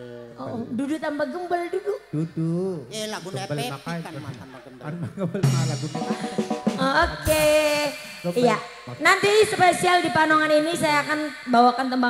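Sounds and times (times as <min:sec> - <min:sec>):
drum fill: 0:05.4 - 0:09.0
cymbal crash: 0:05.4 - 0:09.6.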